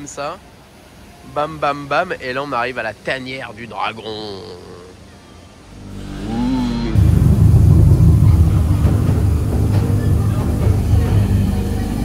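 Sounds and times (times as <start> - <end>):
deep rumbling dragon growl: 5.8 - 11.0.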